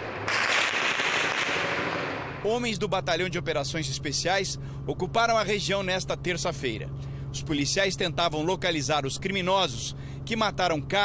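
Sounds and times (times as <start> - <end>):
rapid gunfire crackle: 0.0 - 2.4.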